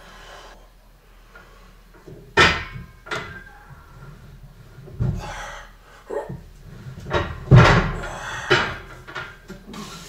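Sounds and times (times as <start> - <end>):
weight machine bar knocks: 2.4 - 3.5, 7.1 - 9.3.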